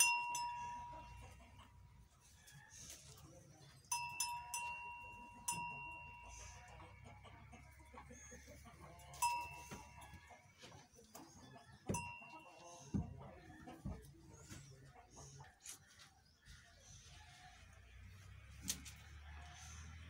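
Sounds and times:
small metal bell ringing: 0.0 - 1.5, 3.9 - 6.7, 9.0 - 10.3, 11.9 - 12.8.

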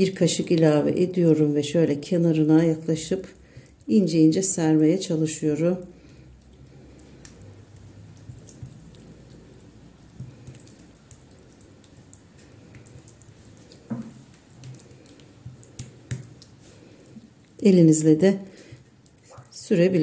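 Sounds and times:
wet squishing: 0.0 - 20.0
spoon scraping dough: 5.5 - 20.0.

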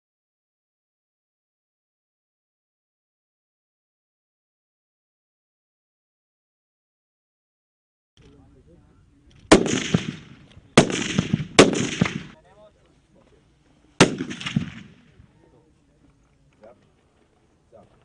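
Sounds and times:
rifle shots with echo: 9.4 - 12.4, 14.0 - 15.2.

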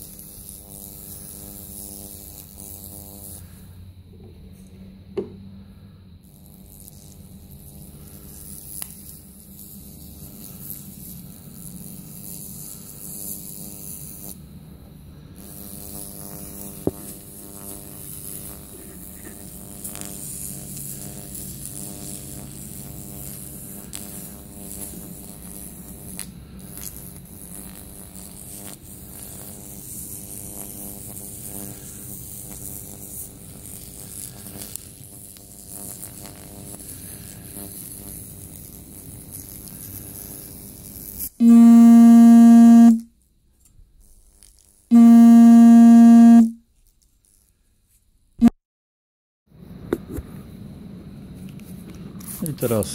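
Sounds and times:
electrical hum and buzz: 0.0 - 43.2, 44.0 - 46.7
loud electronic beeps: 41.4 - 43.0, 44.9 - 46.6.

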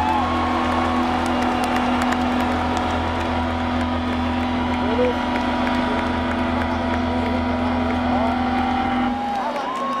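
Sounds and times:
low amplified drone: 0.0 - 9.4.

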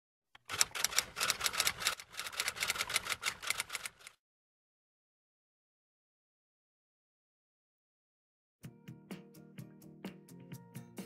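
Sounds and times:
typewriter keys clattering: 0.4 - 4.2.

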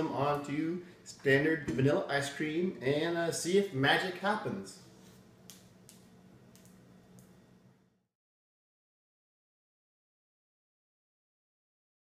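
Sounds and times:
low room hum: 0.0 - 8.1.

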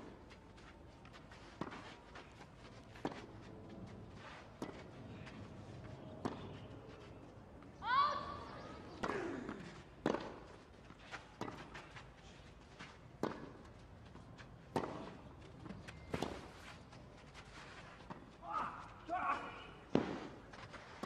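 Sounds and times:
tennis ball bouncing: 8.9 - 12.0, 13.2 - 13.7, 14.7 - 16.6
racket striking tennis ball: 9.0 - 10.4, 13.2 - 13.6.

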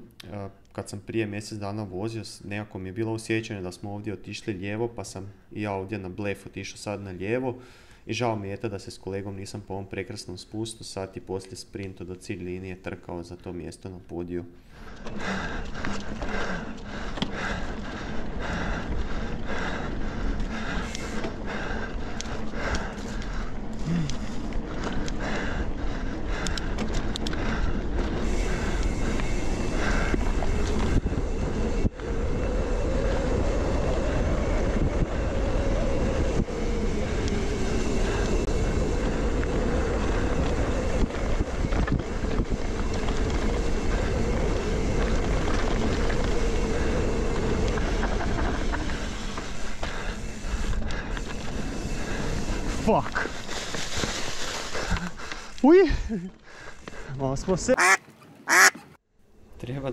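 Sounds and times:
bike tyres on dirt: 14.6 - 59.0
wind rush on microphone: 24.7 - 53.4.

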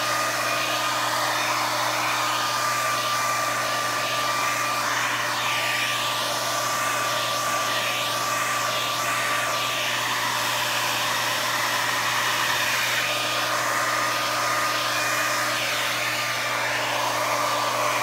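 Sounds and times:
hair dryer running: 0.0 - 18.0.

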